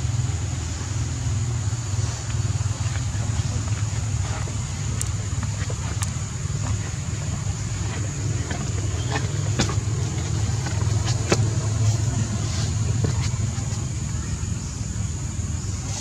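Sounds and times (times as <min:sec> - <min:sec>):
low motor rumble: 0:00.0 - 0:16.0.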